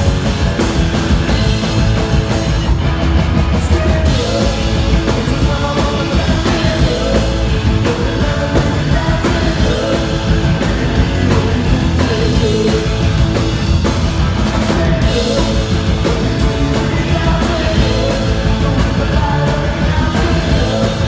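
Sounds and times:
distorted electric guitars: 0:00.0 - 0:21.0
drum kit: 0:00.0 - 0:21.0
punk rock band playing: 0:00.0 - 0:21.0.

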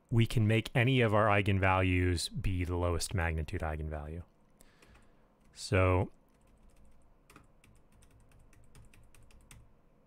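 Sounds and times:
computer keyboard typing: 0:06.3 - 0:09.7.

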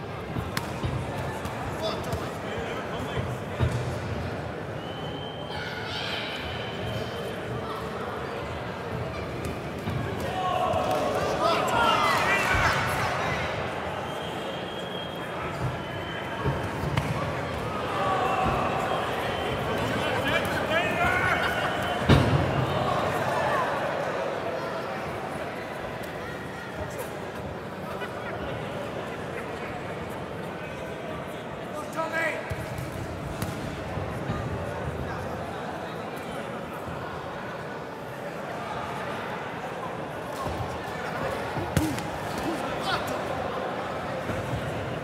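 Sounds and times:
crowd murmur: 0:00.0 - 0:45.0.

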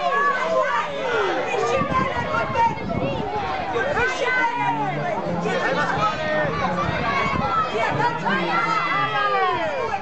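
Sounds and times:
children shouting and cheering: 0:00.0 - 0:10.0.

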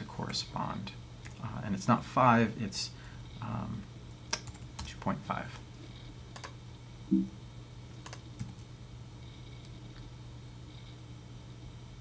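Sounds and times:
low steady hum: 0:00.0 - 0:12.0
short low hum: 0:06.8 - 0:07.7.

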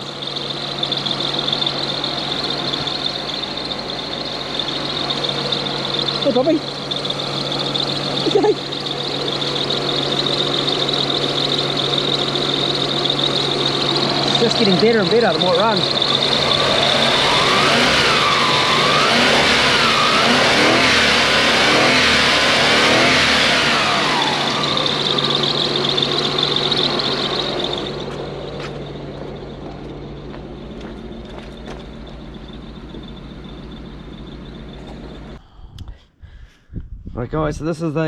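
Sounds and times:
car engine revving and idling: 0:00.0 - 0:35.4.

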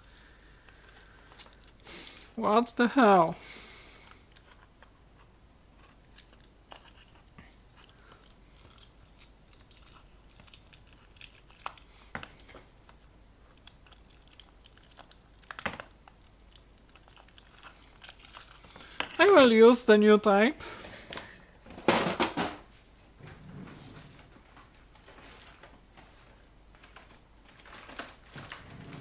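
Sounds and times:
tape crinkling: 0:00.0 - 0:02.4, 0:04.0 - 0:19.4, 0:24.6 - 0:29.0.

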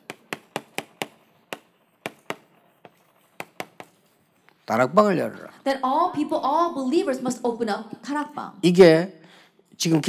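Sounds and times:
chalk tapping on chalkboard: 0:00.0 - 0:04.2.

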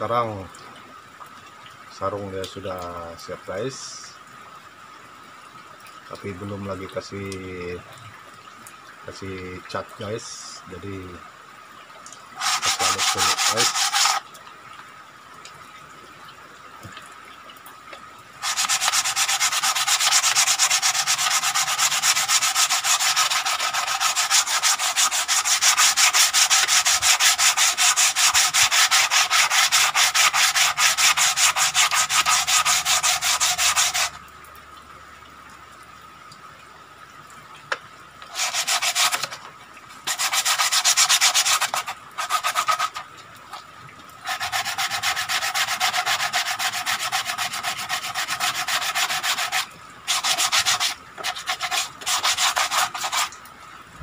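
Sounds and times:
hand sanding wood: 0:12.4 - 0:14.2, 0:18.4 - 0:34.2, 0:38.3 - 0:39.4, 0:40.0 - 0:43.0, 0:44.2 - 0:53.3.

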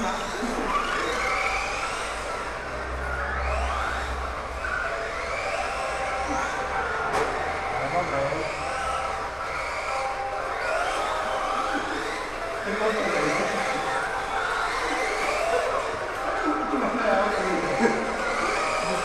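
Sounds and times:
electric motors whining: 0:00.0 - 0:19.0.

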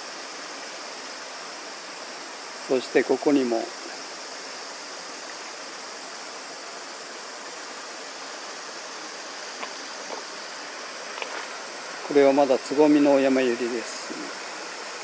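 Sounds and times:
mountain stream rushing: 0:00.0 - 0:15.0.

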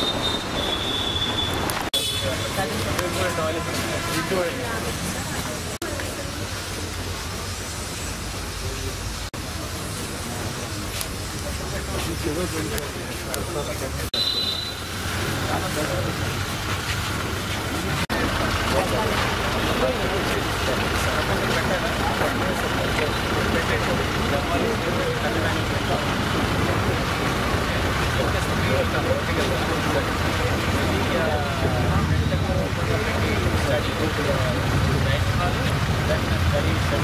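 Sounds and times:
people chattering: 0:01.7 - 0:37.0.

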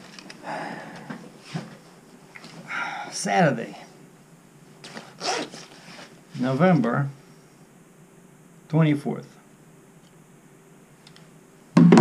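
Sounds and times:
zipper being pulled: 0:04.9 - 0:06.1.

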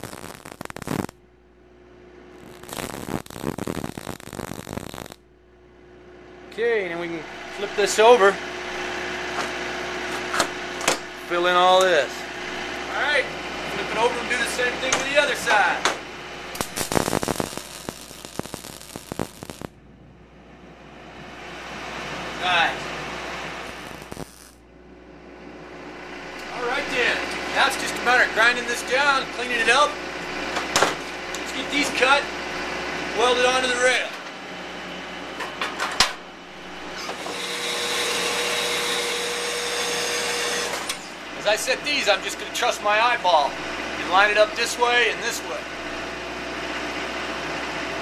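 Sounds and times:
welding arc crackling: 0:00.0 - 0:01.3, 0:02.2 - 0:05.3, 0:07.6 - 0:19.8, 0:22.4 - 0:24.7, 0:26.3 - 0:34.1, 0:36.5 - 0:45.2
power saw cutting steel bar: 0:36.9 - 0:41.2.

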